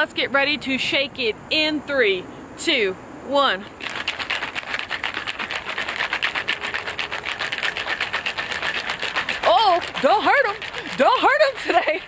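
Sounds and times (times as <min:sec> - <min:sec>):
shaker bottle liquid sloshing: 0:03.8 - 0:12.0.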